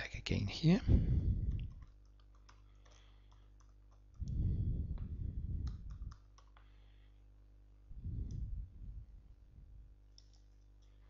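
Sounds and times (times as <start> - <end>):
low rumble: 4.2 - 6.1
keyboard key clicks: 5.6 - 6.6.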